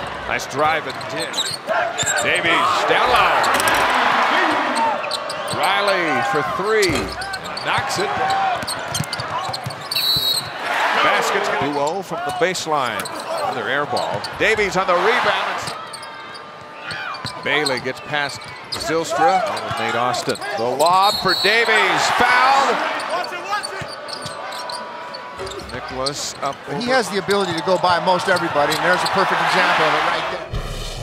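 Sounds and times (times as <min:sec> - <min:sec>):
arena crowd noise: 0:00.0 - 0:30.6
sneaker squeak: 0:00.9 - 0:02.4, 0:04.7 - 0:05.8, 0:06.8 - 0:10.6, 0:12.8 - 0:14.4, 0:15.6 - 0:21.9, 0:23.0 - 0:26.6.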